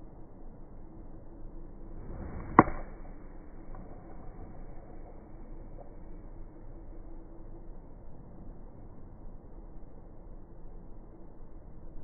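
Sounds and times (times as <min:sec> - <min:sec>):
golf club swish: 0:02.0 - 0:03.0
golf ball struck with a click: 0:02.4 - 0:03.0.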